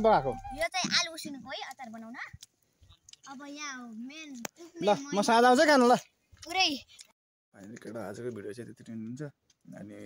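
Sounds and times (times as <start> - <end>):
man talking: 0.0 - 0.5.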